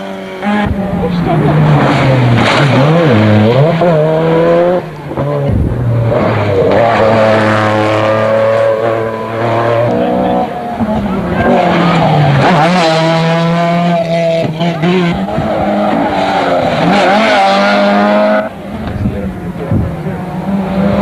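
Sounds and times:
rally car engine revving: 0.0s - 21.0s.

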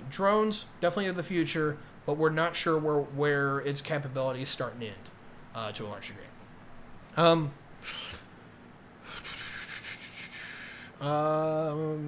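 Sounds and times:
rough hissing noise: 9.0s - 11.1s.

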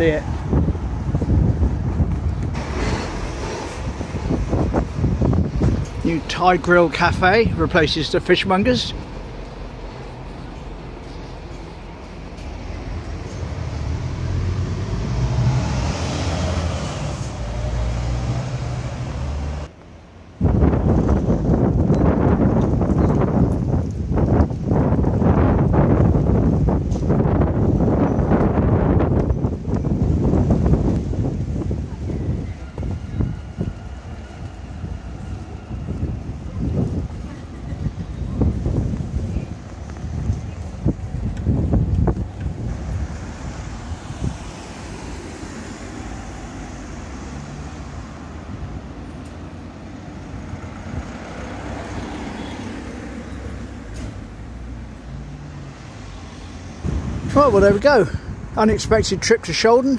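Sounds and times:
street traffic: 0.0s - 59.9s
strong wind buffeting microphone: 0.0s - 59.9s.

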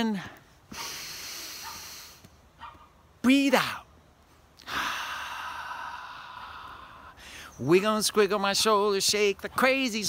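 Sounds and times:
man exhaling slowly: 0.7s - 2.3s, 4.6s - 7.6s.

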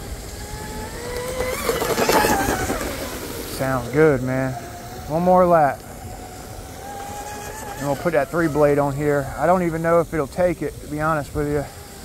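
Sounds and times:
rc boat motor whine: 0.0s - 12.0s
water spray hiss: 0.0s - 12.0s.

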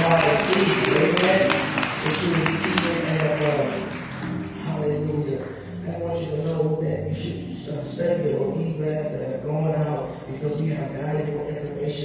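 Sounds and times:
congregation hand clapping: 0.0s - 5.6s
church music: 0.0s - 12.0s.

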